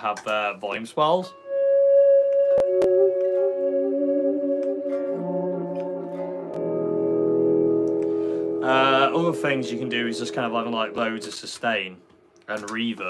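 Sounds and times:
electric guitar volume swells: 0:01.5 - 0:11.8.

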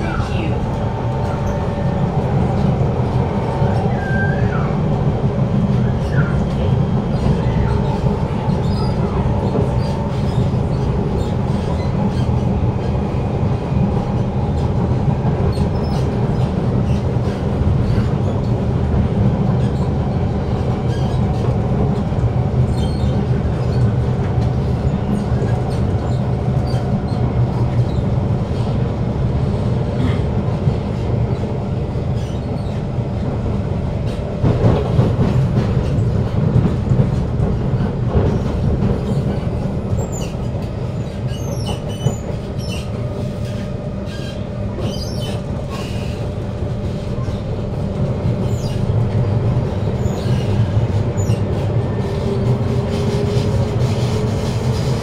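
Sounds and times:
metro car rumble and hum: 0:00.0 - 0:55.0
wheels clicking on rails: 0:30.0 - 0:55.0.

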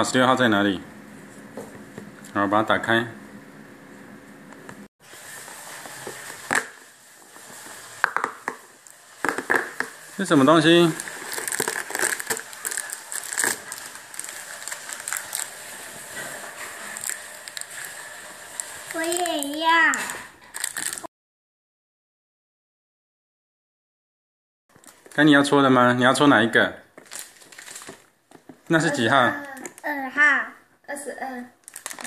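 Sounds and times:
plastic bag crinkling: 0:05.2 - 0:21.1, 0:24.7 - 0:25.3, 0:27.0 - 0:28.1, 0:31.6 - 0:32.0
child exclaiming: 0:18.9 - 0:20.2, 0:28.9 - 0:31.6.

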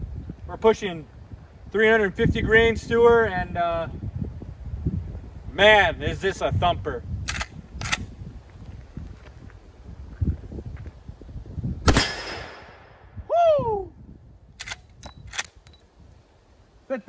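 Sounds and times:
rifle shot with echo: 0:11.8 - 0:13.0.

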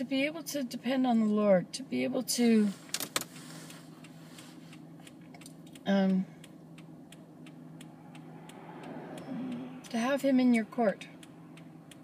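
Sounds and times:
faint hum inside car: 0:00.0 - 0:12.0.

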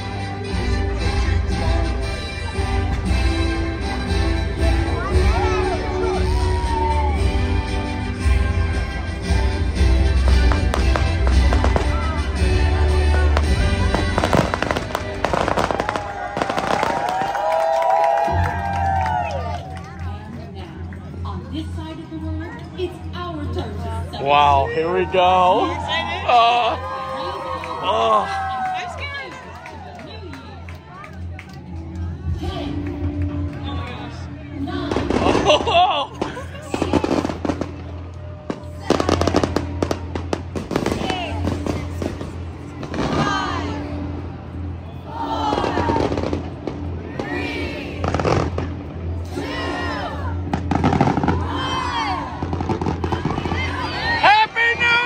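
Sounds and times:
fireworks bangs and crackles: 0:09.6 - 0:17.7, 0:34.9 - 0:43.7, 0:45.5 - 0:47.3, 0:48.0 - 0:49.2, 0:50.4 - 0:54.4.

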